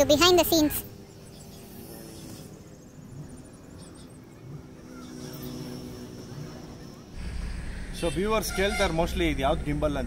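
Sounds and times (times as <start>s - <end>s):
faint vehicle engine hum: 0.0s - 10.0s.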